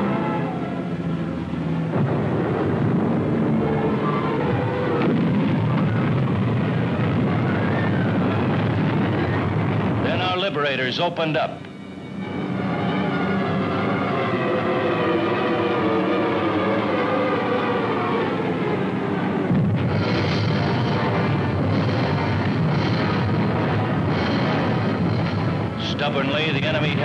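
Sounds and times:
dramatic orchestral music: 0.0s - 27.0s
rumble of bomb explosions: 1.8s - 10.8s, 19.4s - 27.0s.

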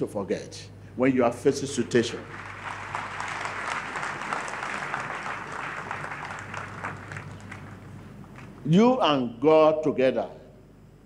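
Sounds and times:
congregation applauding: 1.6s - 8.6s.

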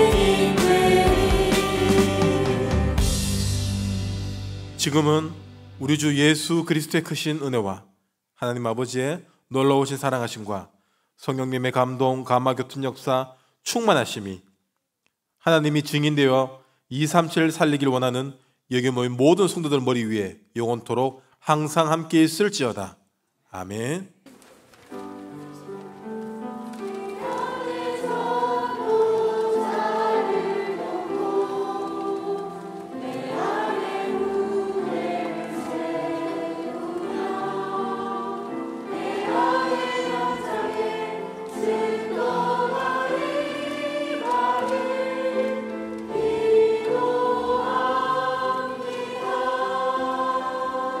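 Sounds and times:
choir singing sustained chords: 0.0s - 5.9s, 26.8s - 51.0s.

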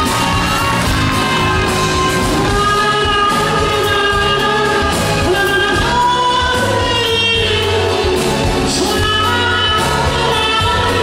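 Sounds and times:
band with steady bass line: 0.0s - 11.0s.

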